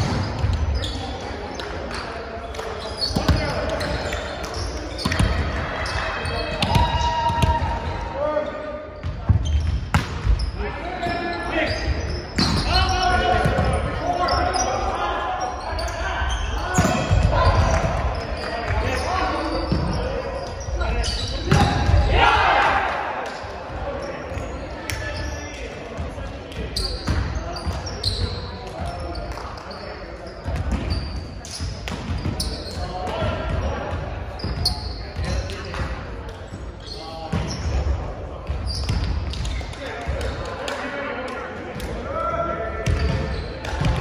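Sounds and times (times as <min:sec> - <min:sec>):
players calling and shouting: 0:00.0 - 0:44.0
volleyball slaps: 0:09.2 - 0:10.4.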